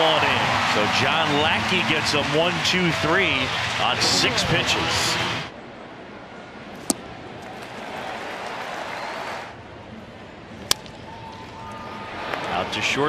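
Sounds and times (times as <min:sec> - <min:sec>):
bat cracking: 0:10.6 - 0:11.0.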